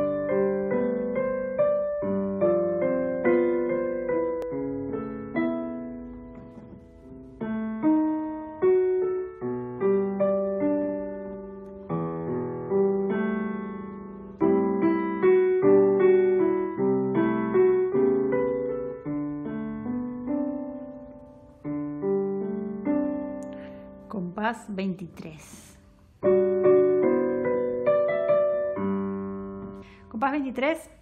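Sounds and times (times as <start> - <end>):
digital piano playing: 0.0 - 24.4, 26.1 - 30.5.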